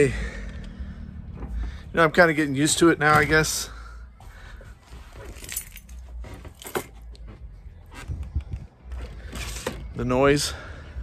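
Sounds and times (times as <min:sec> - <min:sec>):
steady low rumble: 0:00.0 - 0:06.0
handling clicks and metallic rattles: 0:05.2 - 0:09.1.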